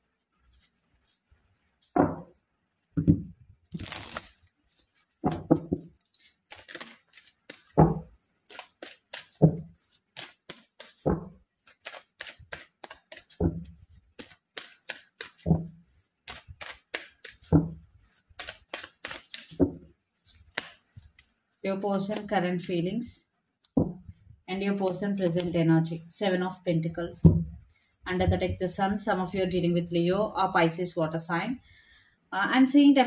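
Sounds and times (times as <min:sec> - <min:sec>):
dull thump of cards: 0:02.0 - 0:02.3, 0:03.0 - 0:03.3, 0:05.2 - 0:05.9, 0:07.7 - 0:08.1, 0:11.0 - 0:11.4, 0:23.8 - 0:24.1
cards shuffling clicks: 0:03.7 - 0:21.4.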